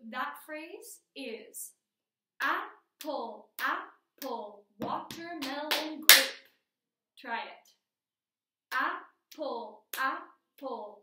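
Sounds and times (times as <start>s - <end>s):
woman chanting in rhythm: 2.4s - 6.3s, 8.7s - 11.0s
sharp hand clap: 4.8s - 6.4s.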